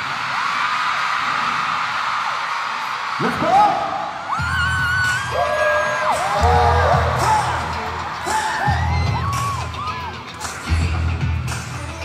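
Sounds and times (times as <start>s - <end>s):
live pop music over sound system: 3.1s - 12.0s.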